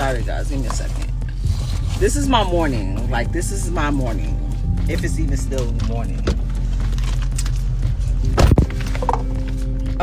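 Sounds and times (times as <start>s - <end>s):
music on car stereo: 0.0s - 10.0s.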